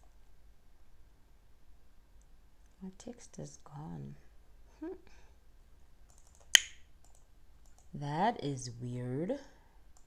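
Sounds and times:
sharp loud click: 6.6s - 6.8s.

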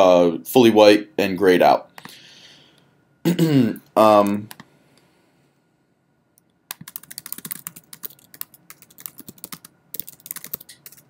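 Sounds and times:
fast typing on keyboard: 6.7s - 11.0s.

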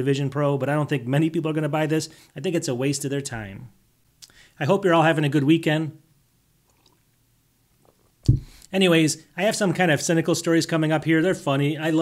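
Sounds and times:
man sipping and swallowing beer: 6.6s - 8.7s.

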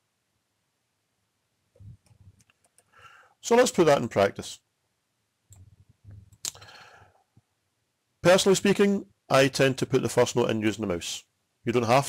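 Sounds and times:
soft breath: 2.8s - 3.4s, 6.1s - 7.4s.

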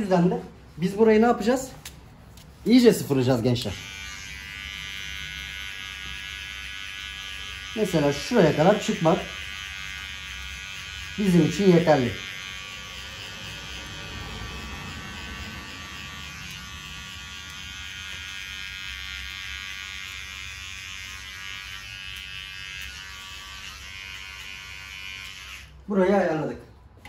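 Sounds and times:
electric hair clipper buzzing: 3.0s - 25.9s.

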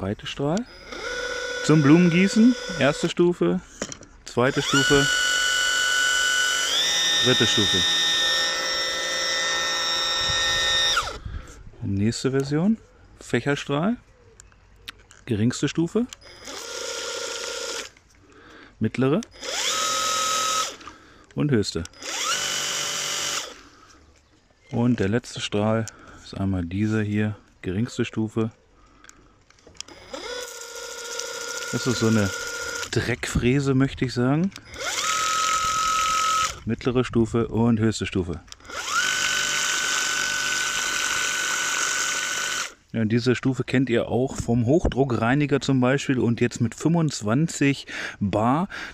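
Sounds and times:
pressure cleaner pump whirring: 0.6s - 3.2s, 4.4s - 11.2s, 16.2s - 17.9s, 19.3s - 21.0s, 21.8s - 23.6s, 29.8s - 33.0s, 34.5s - 36.6s, 38.5s - 42.8s.

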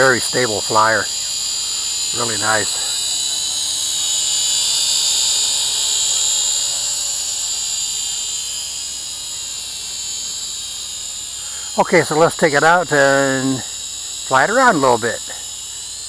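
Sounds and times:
quadcopter motors whining: 0.0s - 16.0s.

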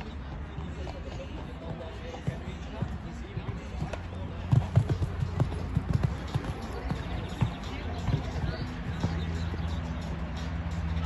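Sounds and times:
horse hooves thudding on sand: 1.7s - 9.8s.

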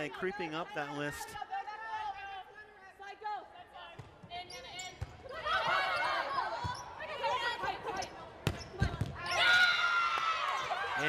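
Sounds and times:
crowd shouting and cheering: 9.1s - 11.0s.

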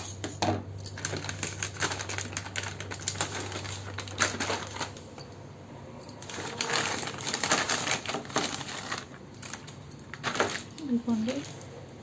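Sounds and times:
plastic packaging crinkling: 0.0s - 5.3s, 6.1s - 11.7s.

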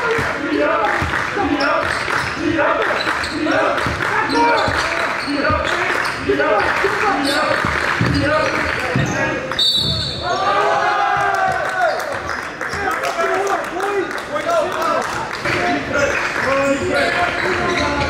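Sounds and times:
voices echoing in gym: 0.0s - 18.0s
people shouting: 10.1s - 12.1s.

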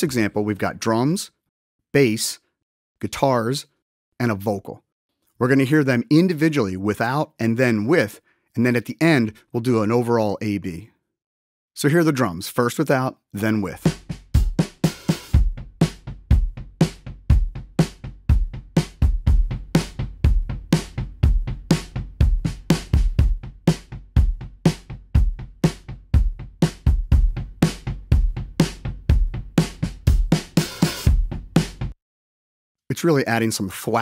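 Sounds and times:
drum kit groove: 13.7s - 32.0s.

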